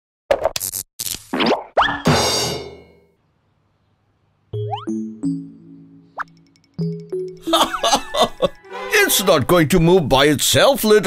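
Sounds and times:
rising pitch swoops: 4.6s - 7.0s
ringing chord: 4.6s - 7.9s.

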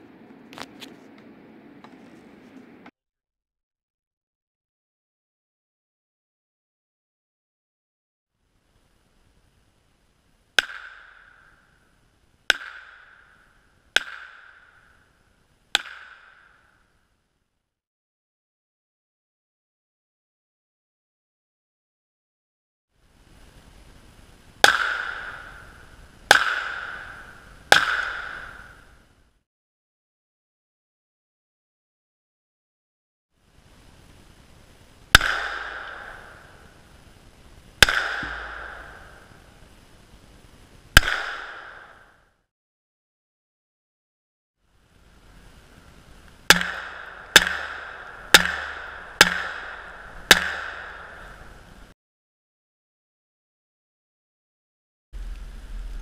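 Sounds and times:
handgun shots echoing: 35.2s - 36.3s, 37.8s - 39.3s, 41.0s - 42.0s, 46.5s - 51.3s.

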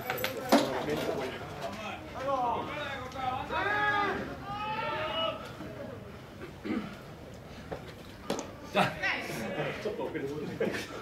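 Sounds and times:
players shouting drawn-out calls: 1.8s - 6.2s.

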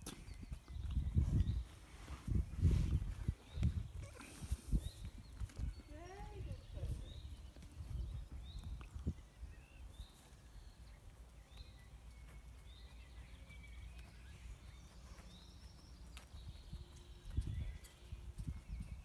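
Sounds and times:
pony hooves on loose ground: 0.0s - 19.0s.

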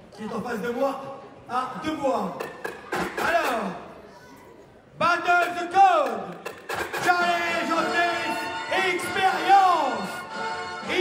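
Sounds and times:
voice over public address: 7.0s - 11.0s.

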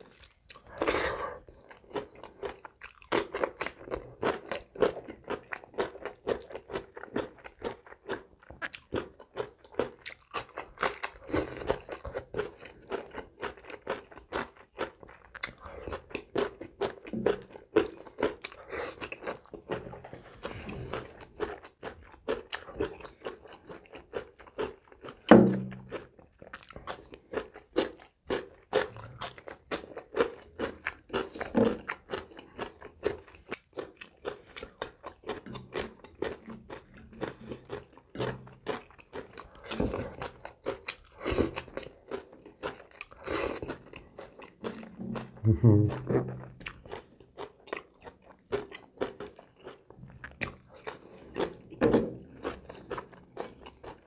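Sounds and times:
chewing and crunching food: 0.0s - 54.0s.

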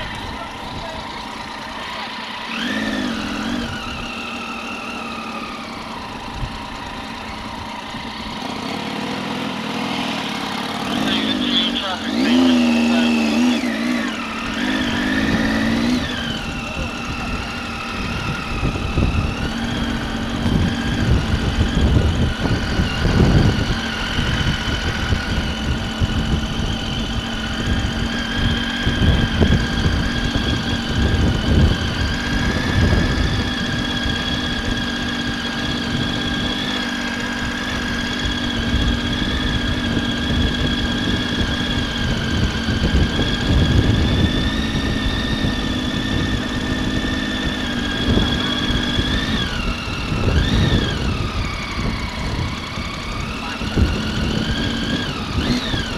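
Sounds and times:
motorcycle engine: 0.0s - 55.9s
wind buffeting microphone: 14.5s - 55.9s.

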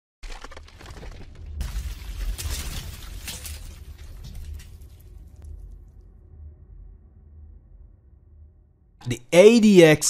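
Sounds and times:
crash of breaking stone: 0.2s - 5.5s
concrete cracking and crumbling: 0.2s - 6.0s
deep rumble: 0.9s - 9.0s.

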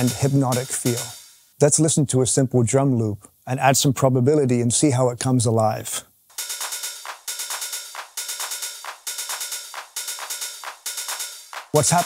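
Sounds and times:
electronic clap: 0.0s - 1.1s, 6.3s - 12.0s
electronic open hi-hats: 0.0s - 1.9s, 6.3s - 12.0s.

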